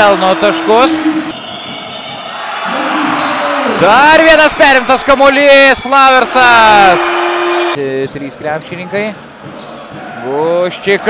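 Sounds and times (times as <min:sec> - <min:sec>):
commentator's voice: 0:00.0 - 0:01.3
arena crowd noise: 0:00.0 - 0:11.0.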